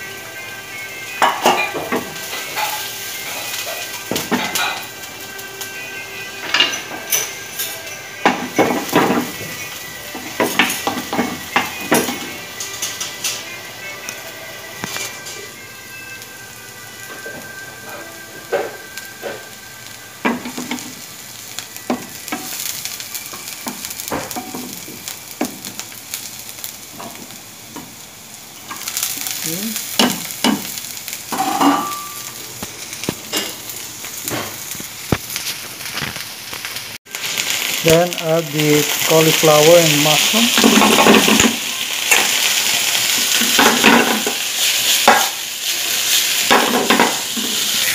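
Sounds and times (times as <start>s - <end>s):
garlic and onion sizzling in oil: 0.0s - 47.9s.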